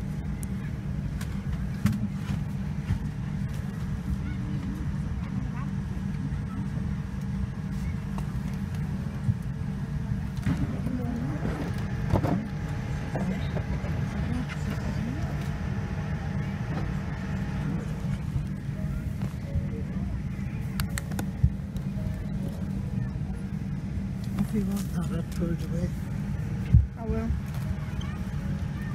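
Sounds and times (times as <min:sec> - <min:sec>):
airliner cabin rumble: 0:00.0 - 0:28.9
faint passenger voices: 0:00.0 - 0:28.9.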